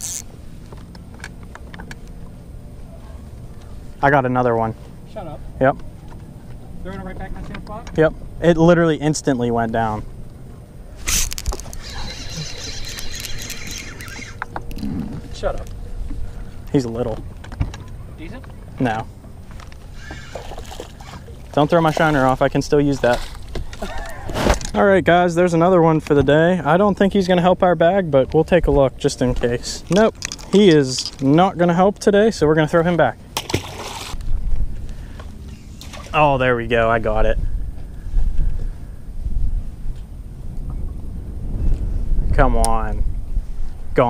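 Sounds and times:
fishing reel whirring: 0:00.0 - 0:00.3, 0:11.0 - 0:14.8, 0:19.9 - 0:20.9
fish splashing into water: 0:33.4 - 0:34.2, 0:35.8 - 0:36.2
wind rumble on microphone: 0:34.1 - 0:44.0.

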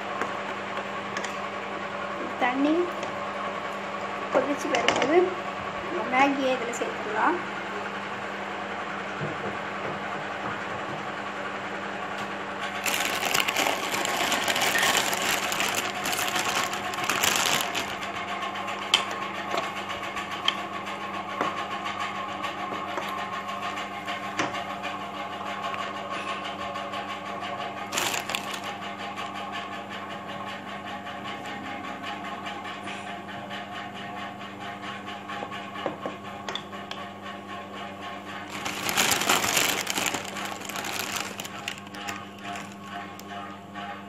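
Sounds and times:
steady mechanical hum: 0:00.0 - 0:44.0.

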